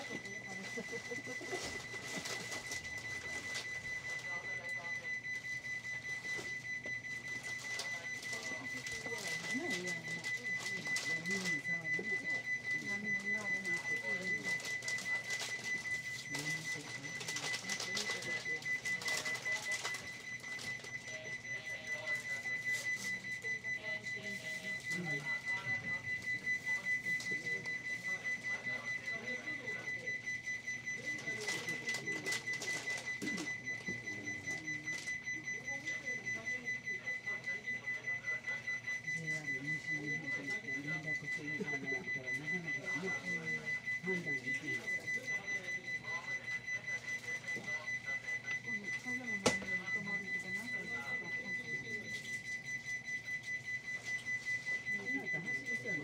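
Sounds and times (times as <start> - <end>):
muffled voices: 0.0 - 56.0
rapid high electronic beeps: 0.0 - 56.0.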